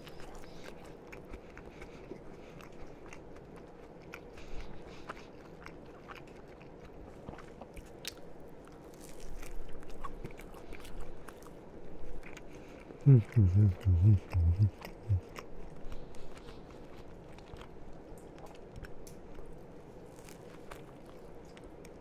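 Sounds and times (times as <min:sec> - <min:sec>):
chewing toasted sandwich: 0:00.0 - 0:22.0.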